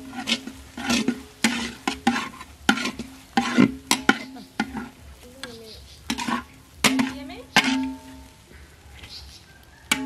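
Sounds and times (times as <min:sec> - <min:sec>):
spatula scraping a pan: 0:00.0 - 0:05.2, 0:05.9 - 0:08.3
food sizzling: 0:00.0 - 0:10.0.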